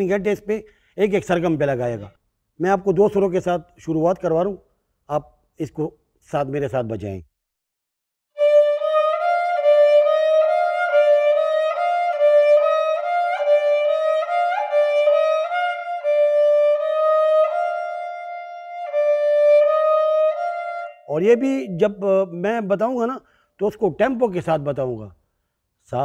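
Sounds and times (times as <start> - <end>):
bowed folk fiddle: 8.4 - 21.0.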